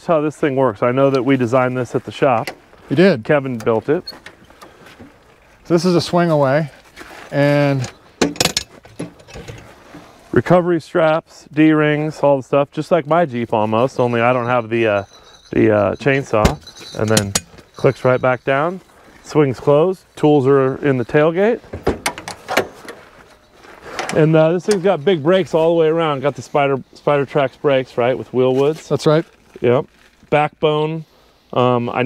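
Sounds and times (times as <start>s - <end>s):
metallic latch clicks and clanks: 7.8s - 9.6s, 16.4s - 17.7s, 21.7s - 23.0s.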